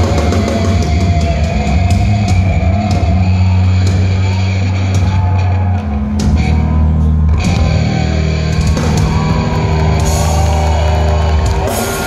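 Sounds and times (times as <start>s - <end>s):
distorted guitars and bass: 0.0s - 12.0s.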